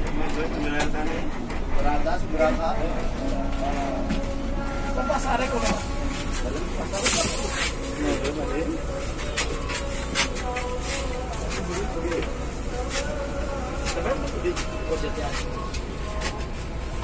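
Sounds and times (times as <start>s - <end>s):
bus engine droning: 0.0s - 17.0s
air hiss: 7.0s - 8.0s.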